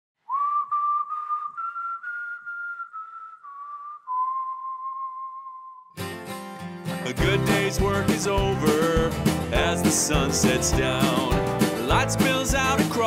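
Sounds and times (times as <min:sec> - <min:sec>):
person whistling slow melody: 0:00.2 - 0:06.0.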